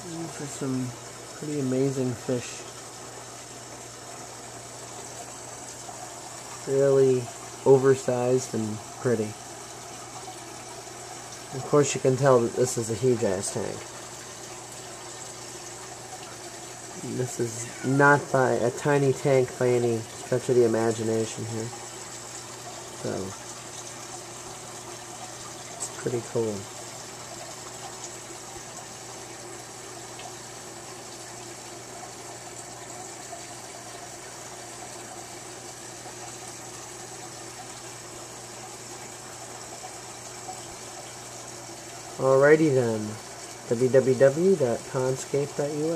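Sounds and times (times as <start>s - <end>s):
aquarium bubbling and water churn: 0.0s - 45.9s.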